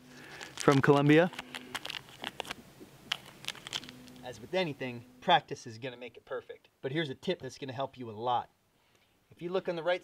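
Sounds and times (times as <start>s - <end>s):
plastic wrapper crinkling: 0.0s - 4.4s.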